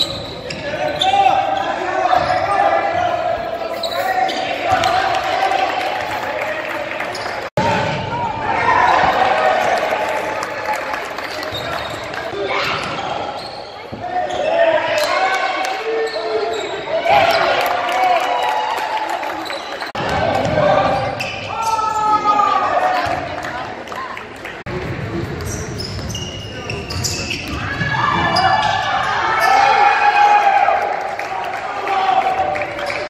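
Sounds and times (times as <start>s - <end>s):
basketball bouncing on court: 20.0s - 21.3s.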